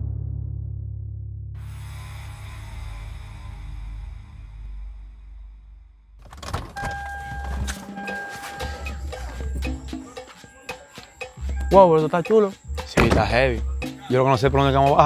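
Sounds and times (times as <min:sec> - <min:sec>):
car door opening: 0:06.2 - 0:08.4
steady high beep tone: 0:06.8 - 0:15.0
music with heavy bass: 0:07.0 - 0:15.0
low dark music drone: 0:07.1 - 0:10.2.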